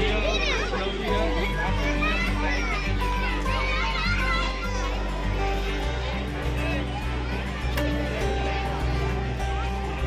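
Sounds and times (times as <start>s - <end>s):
background music: 0.0s - 10.0s
children chattering and shouting: 0.0s - 10.0s.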